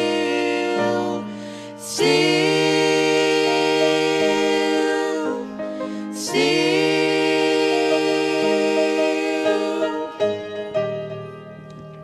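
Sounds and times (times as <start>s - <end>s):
vocal trio singing in harmony: 0.0s - 11.2s.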